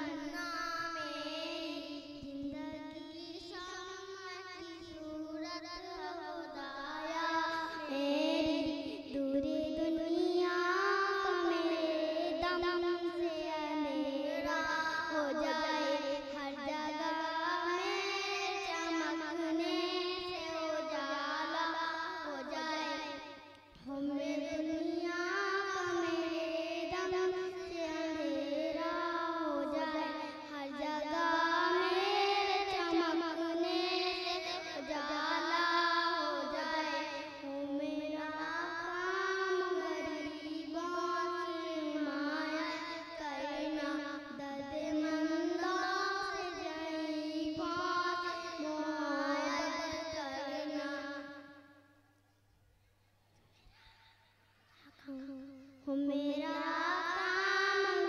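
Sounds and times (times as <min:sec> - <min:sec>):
girl singing into a microphone: 0:00.0 - 0:51.8, 0:53.5 - 0:58.0
faint steady hum: 0:00.0 - 0:58.0.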